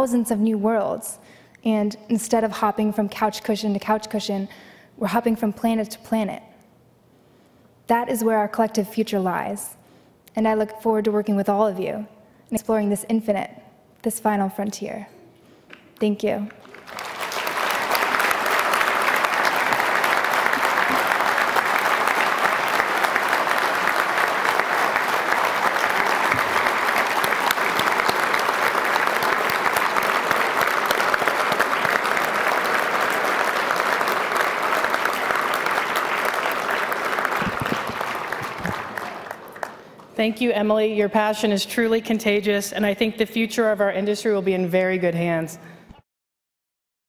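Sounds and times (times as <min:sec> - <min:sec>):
audience applauding: 0:16.5 - 0:40.2.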